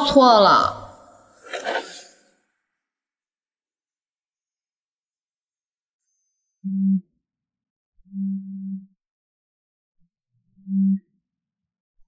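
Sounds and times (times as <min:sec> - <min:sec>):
mobile phone vibrating: 0:08.1 - 0:09.0.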